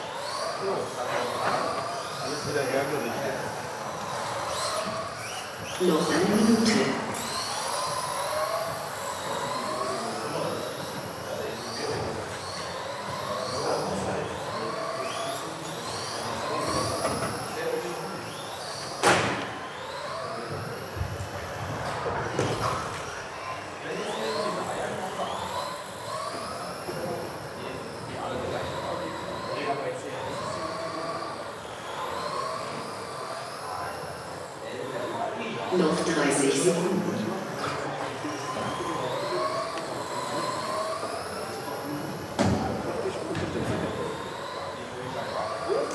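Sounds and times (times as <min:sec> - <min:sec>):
rc car motors whining: 0:00.0 - 0:45.9.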